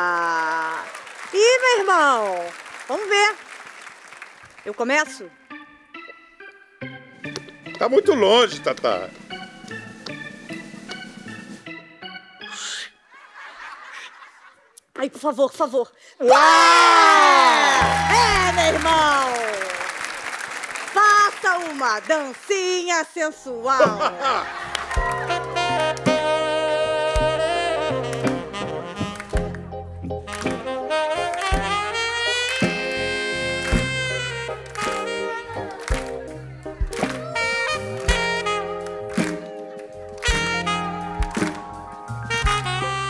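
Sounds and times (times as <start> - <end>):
organ-led band music: 5.0 - 12.6, 17.8 - 19.2, 23.3 - 43.0
light laughter: 13.1 - 14.8
bass drum beat: 17.8 - 19.1, 25.0 - 30.8, 31.4 - 34.6, 35.9 - 39.4, 40.2 - 43.0.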